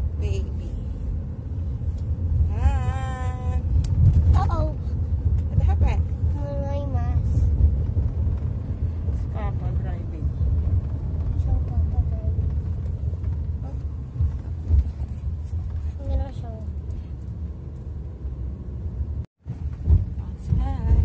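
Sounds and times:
car road rumble: 0.0 - 21.0.

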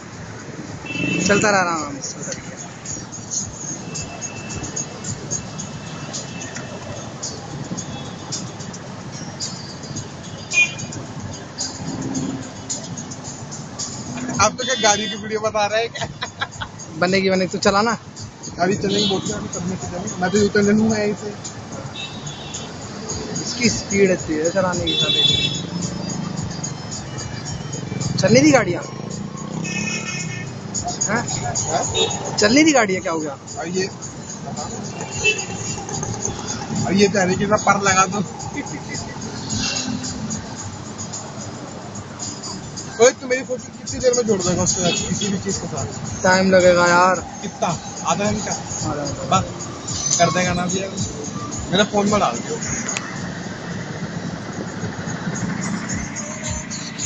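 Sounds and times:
music playing: 0.0 - 57.0
traffic rumble: 0.0 - 57.0.

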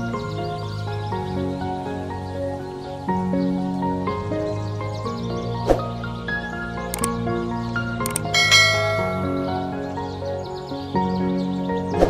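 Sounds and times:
instrumental background music: 2.5 - 12.0
mouse clicks: 8.1 - 8.4
bright bell ding: 8.1 - 9.9.

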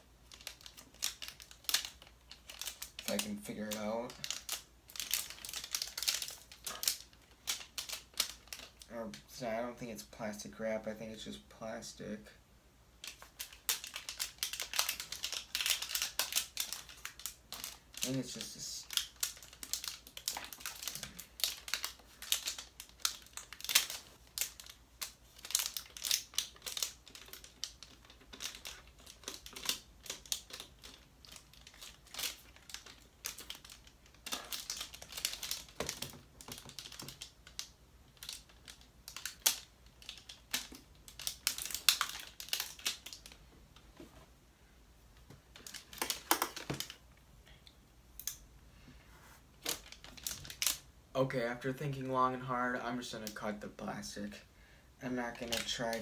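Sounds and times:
plastic film crinkling: 0.2 - 9.2, 13.0 - 43.4, 45.5 - 47.0, 49.5 - 50.9, 55.3 - 56.0.

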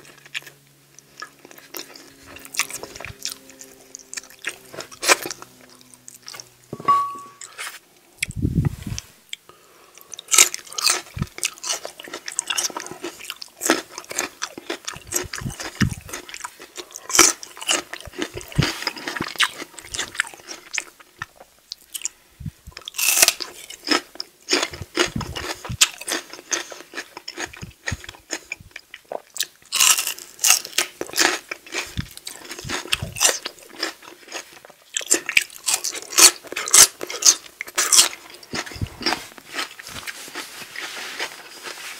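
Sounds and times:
crunching and chewing raw vegetables: 0.0 - 6.6, 7.4 - 41.9.

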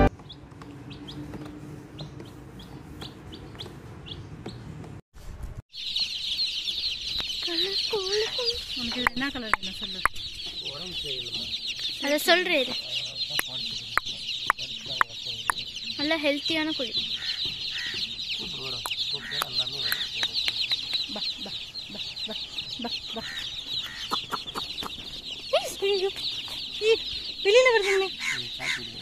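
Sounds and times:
lower-pitched chick calls: 0.0 - 4.6, 5.8 - 29.0
baby chicks peeping: 0.0 - 4.9, 5.8 - 29.0.

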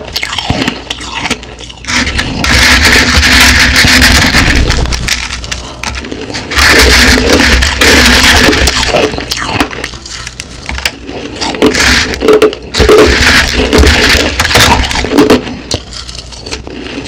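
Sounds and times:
crushed ice being chewed: 0.0 - 17.0.

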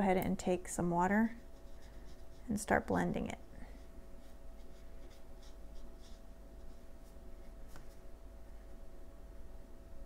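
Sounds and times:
wet brush swishing on paper: 1.3 - 2.9, 3.7 - 8.0.

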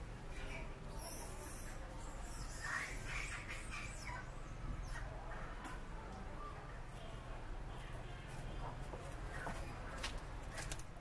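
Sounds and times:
baby monkey squeaking: 0.5 - 5.1.

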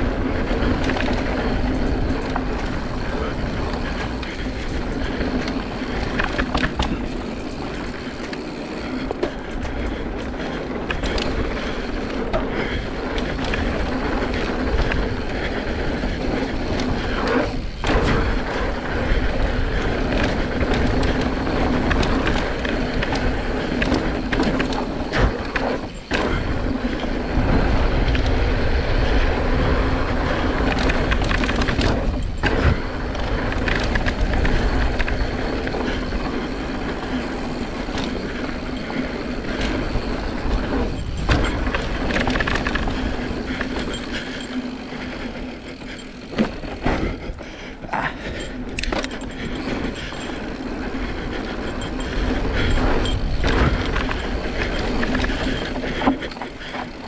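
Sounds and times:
bike tyres on loose dirt: 0.0 - 57.0
chain and frame rattle: 0.0 - 57.0.

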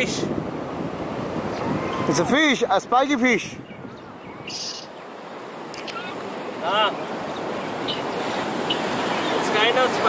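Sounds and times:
sea surf on a beach: 0.0 - 10.0.

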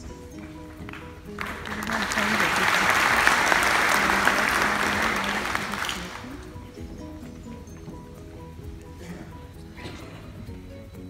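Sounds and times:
audience applauding: 0.4 - 6.8.

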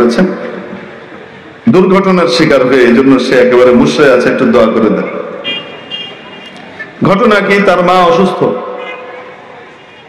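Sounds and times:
steady background noise: 0.0 - 10.0
high-pitched vehicle horn toots: 8.8 - 9.4.

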